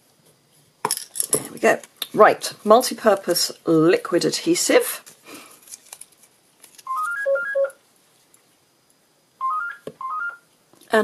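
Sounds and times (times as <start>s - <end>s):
phone ringtone beeping: 6.9s - 7.8s, 9.4s - 10.4s.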